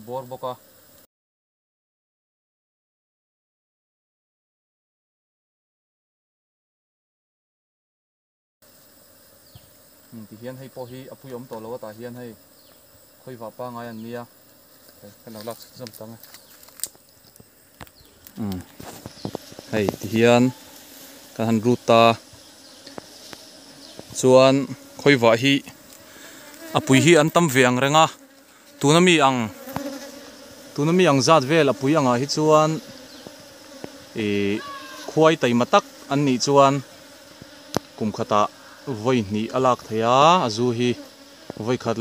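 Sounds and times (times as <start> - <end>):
bees buzzing: 0.0 - 1.1, 8.6 - 42.0
spoken word: 18.4 - 18.7, 34.2 - 35.3.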